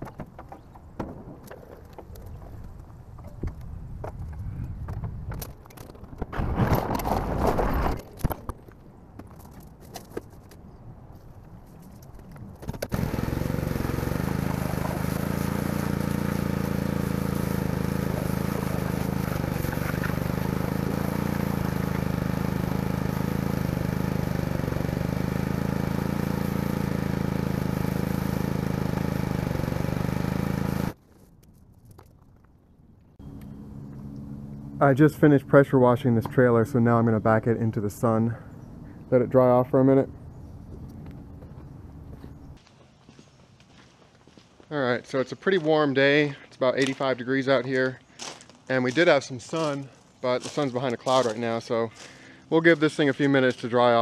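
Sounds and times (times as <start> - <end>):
pressure washer spray hissing: 12.9 - 31.0.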